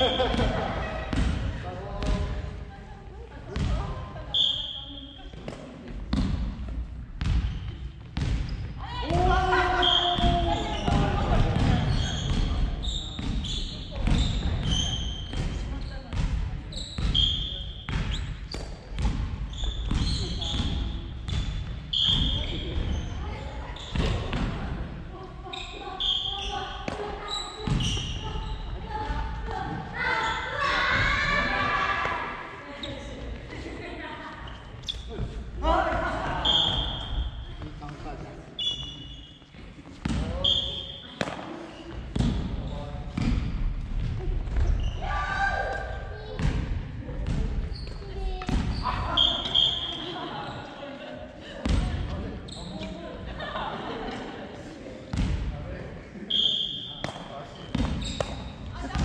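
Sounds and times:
sneakers squeaking on wooden floor: 0:00.0 - 0:01.3, 0:04.3 - 0:24.5, 0:25.4 - 0:31.2, 0:34.3 - 0:45.1, 0:47.2 - 0:50.9, 0:51.6 - 0:53.1, 0:56.3 - 0:59.0
players' voices: 0:21.9 - 0:59.0
racket hitting shuttlecock: 0:41.2 - 0:41.5, 0:57.0 - 0:59.0.

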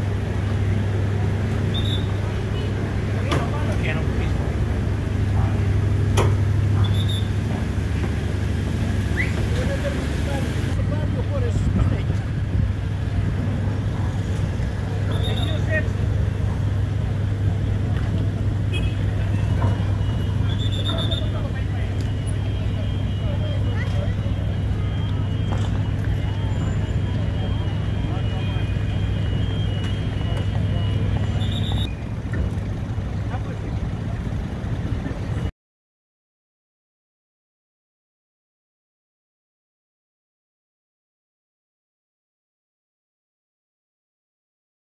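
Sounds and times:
crowd talking: 0:00.0 - 0:35.5
low engine hum: 0:00.0 - 0:35.5.

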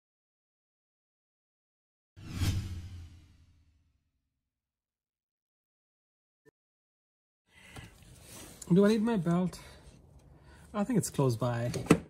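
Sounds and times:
whoosh into sharp hit: 0:02.2 - 0:03.7.

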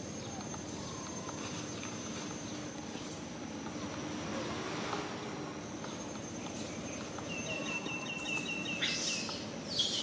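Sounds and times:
outdoor background hiss: 0:00.0 - 0:10.0
high falling bird calls: 0:05.9 - 0:10.0
bird chirping rapidly: 0:06.8 - 0:10.0.

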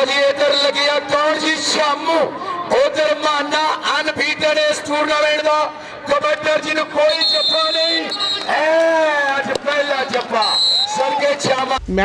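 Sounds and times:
man giving commentary: 0:00.0 - 0:08.1.

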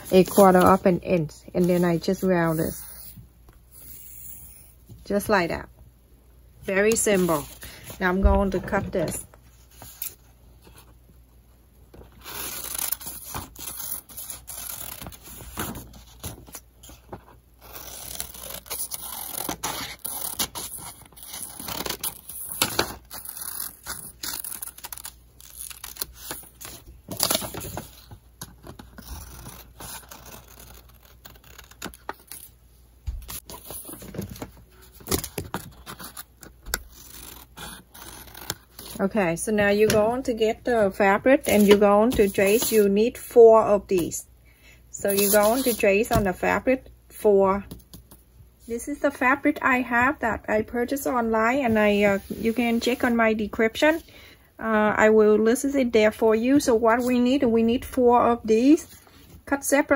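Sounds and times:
paper scraping: 0:00.0 - 0:03.2, 0:12.2 - 0:32.5, 0:41.3 - 0:42.9, 0:45.1 - 0:46.2.

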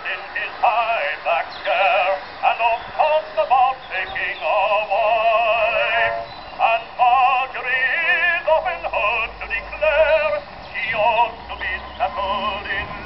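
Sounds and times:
phonograph playing man singing: 0:00.0 - 0:13.0.

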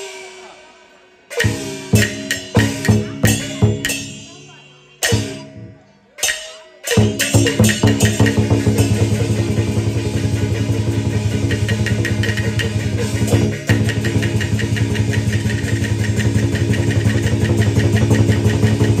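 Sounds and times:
fast percussion beat: 0:01.3 - 0:19.0.

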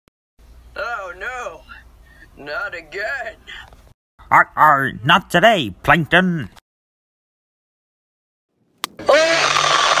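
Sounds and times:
man screaming cartoon-style: 0:09.0 - 0:10.0.

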